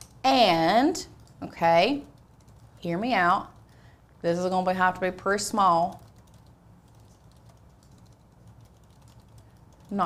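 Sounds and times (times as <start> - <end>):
low room hum: 0.0 - 10.0
keyboard and mouse clicking: 5.9 - 10.0.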